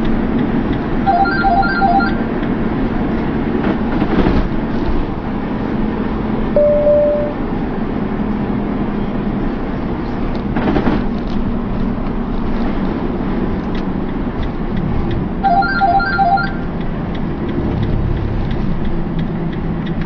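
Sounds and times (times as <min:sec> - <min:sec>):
road and engine rumble: 0:00.0 - 0:20.0
short electronic beeps: 0:01.1 - 0:02.2, 0:06.6 - 0:07.5, 0:15.4 - 0:16.7.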